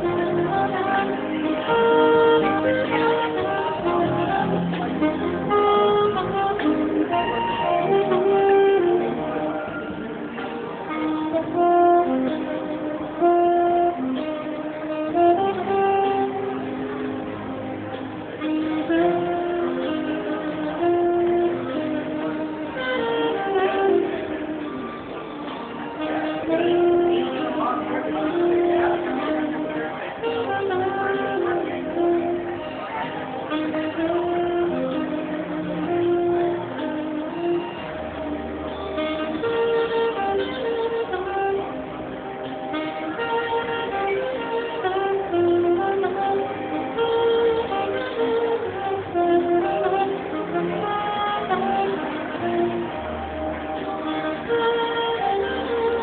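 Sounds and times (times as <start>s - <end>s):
jazz band with keyboards: 0.0s - 56.0s
saxophone melody: 0.0s - 56.0s.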